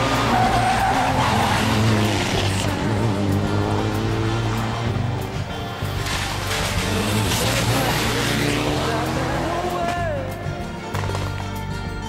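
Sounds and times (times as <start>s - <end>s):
rally car engine accelerating: 0.0s - 10.3s.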